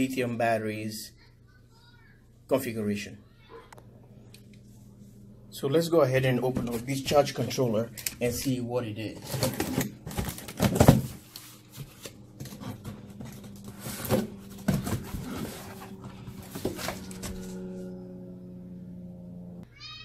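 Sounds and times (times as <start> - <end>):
cardboard box being opened: 11.8 - 17.5
steady low tone with overtones: 17.0 - 19.6.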